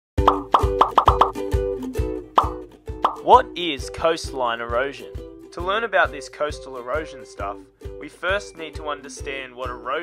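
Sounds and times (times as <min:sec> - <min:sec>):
cartoon pop sound effects: 0:00.2 - 0:01.4, 0:02.3 - 0:03.3
light background music: 0:00.2 - 0:10.0.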